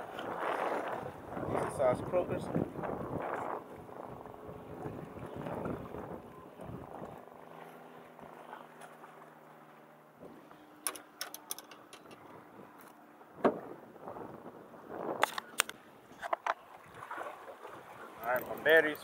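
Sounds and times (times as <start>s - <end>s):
wind on microphone: 0.0s - 7.2s, 13.4s - 17.2s
sharp clicks and knocks: 10.8s - 13.6s.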